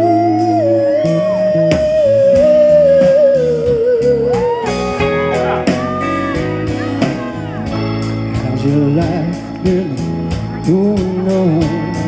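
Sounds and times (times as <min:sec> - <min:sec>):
bass guitar: 0:00.0 - 0:12.0
drums: 0:00.0 - 0:12.0
keyboards: 0:00.0 - 0:12.0
wavering lead melody: 0:00.0 - 0:12.0.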